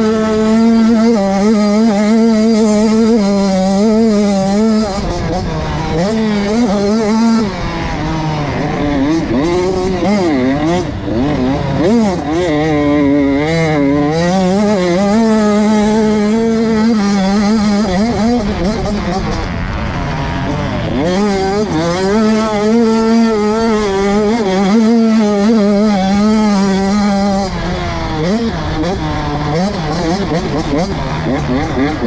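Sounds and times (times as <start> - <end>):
motocross bike engine revving: 0.0 - 32.0.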